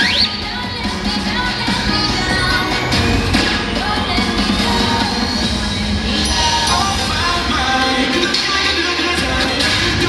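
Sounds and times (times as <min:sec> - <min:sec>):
cheerleading music with singing: 0:00.0 - 0:10.0.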